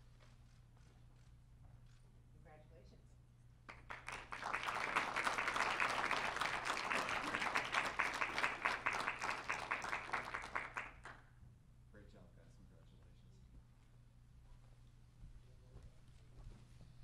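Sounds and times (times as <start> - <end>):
audience applause: 3.7 - 11.2.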